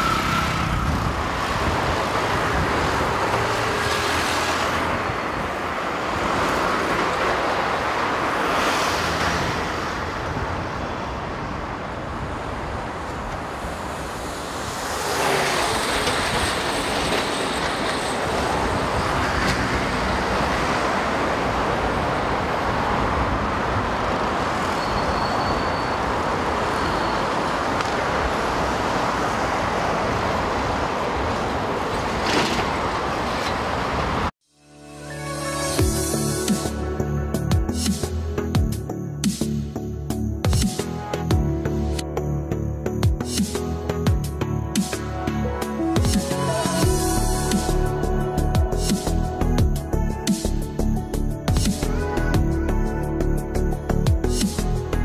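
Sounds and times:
highway traffic rushing: 0:00.0 - 0:34.4
vehicles passing close by: 0:00.0 - 0:34.4.

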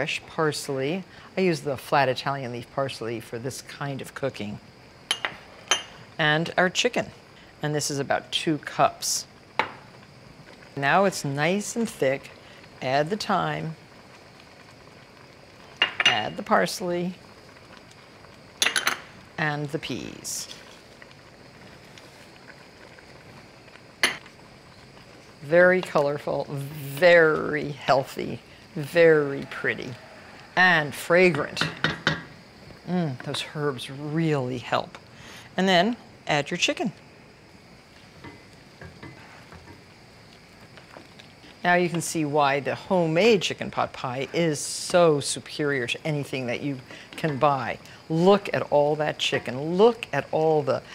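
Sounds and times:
faint hiss: 0:00.0 - 0:50.9
sauce simmering in a pot: 0:00.0 - 0:50.9.

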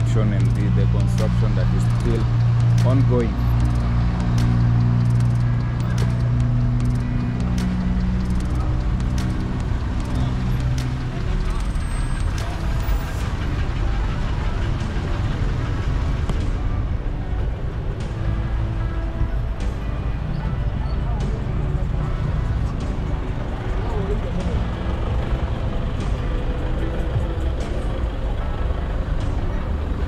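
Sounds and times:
traffic noise: 0:00.0 - 0:30.0
vehicle engine humming: 0:00.0 - 0:30.0.

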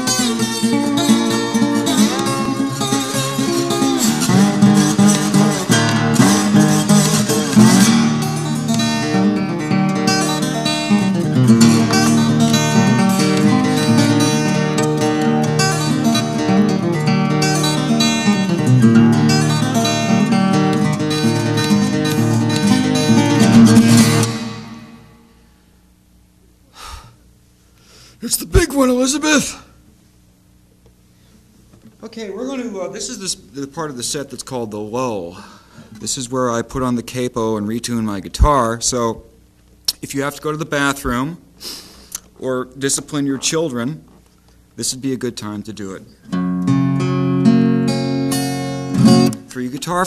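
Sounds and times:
fingerpicked acoustic guitar: 0:00.0 - 0:25.5, 0:46.1 - 0:50.0.

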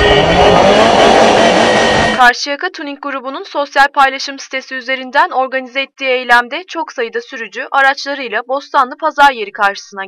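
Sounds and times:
car horns blaring: 0:00.0 - 0:02.2
engine and traffic noise: 0:00.0 - 0:02.2.

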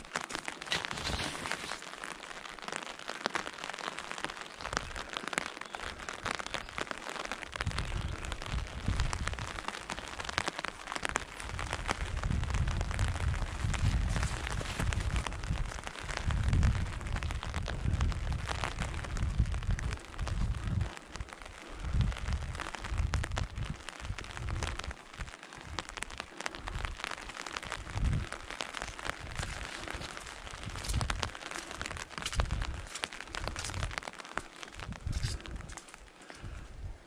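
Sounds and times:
rain on fabric umbrella: 0:00.0 - 0:37.0.

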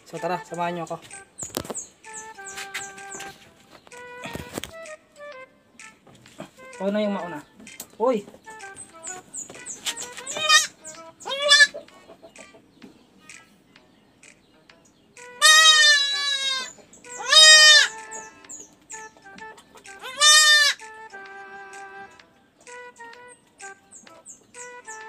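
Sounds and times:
goat kid bleating: 0:10.2 - 0:11.8, 0:15.4 - 0:18.4, 0:20.0 - 0:20.8.

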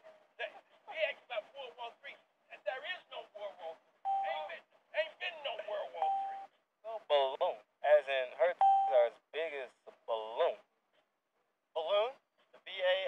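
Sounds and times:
voices talking: 0:00.4 - 0:10.6
short flat tones: 0:06.0 - 0:06.5.

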